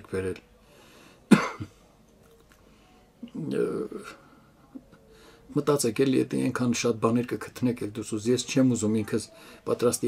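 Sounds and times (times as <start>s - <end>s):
man coughing: 1.3s - 1.8s.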